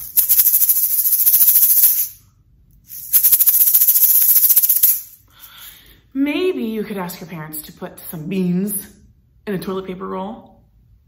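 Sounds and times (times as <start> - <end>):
plastic egg shakers rattling: 0.0 - 2.2, 2.8 - 5.4.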